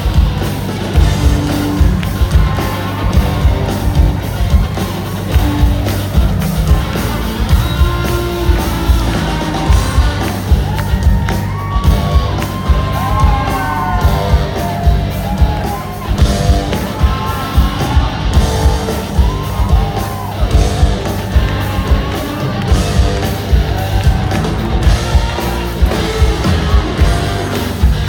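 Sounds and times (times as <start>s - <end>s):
heavy drum beat: 0.0s - 28.0s
live band playing loud: 0.0s - 28.0s.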